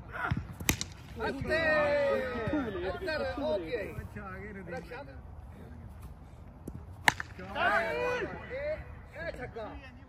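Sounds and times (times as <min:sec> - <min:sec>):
cricket bat striking ball: 0:00.3 - 0:01.1, 0:06.7 - 0:07.5.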